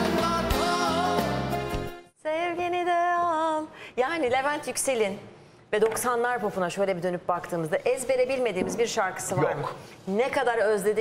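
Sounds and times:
live concert music: 0.0s - 2.0s.

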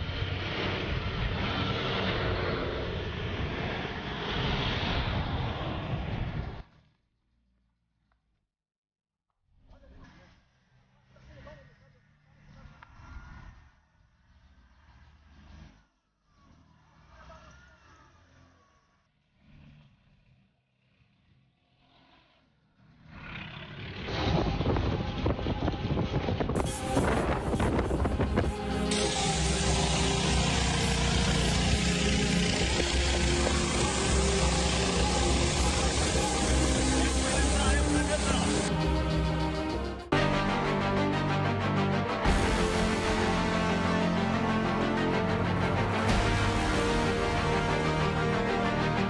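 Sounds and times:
wildfire and wind rushing: 0.0s - 6.7s, 23.8s - 38.7s.

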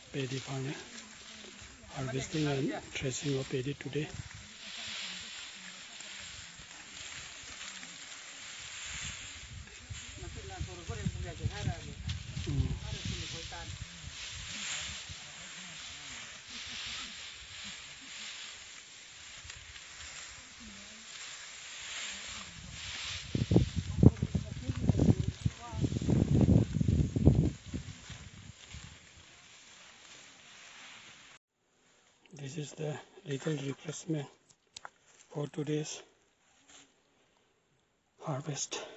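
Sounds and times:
dry rice stalks rustling: 0.0s - 32.2s, 36.4s - 37.0s
faint outdoor hiss: 0.0s - 38.9s.

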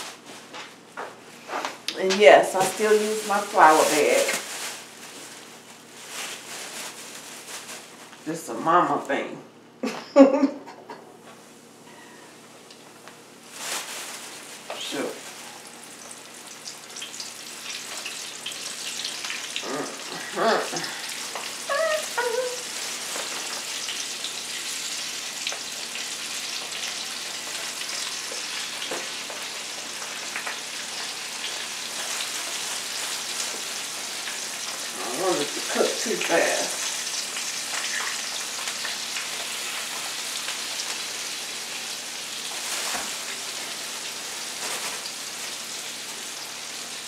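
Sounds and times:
food sizzling in grease: 1.4s - 8.0s, 13.4s - 47.0s.

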